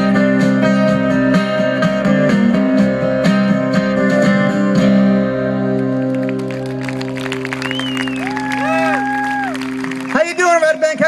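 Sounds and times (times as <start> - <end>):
scattered clapping: 6.0 - 11.0
man speaking: 10.2 - 11.0.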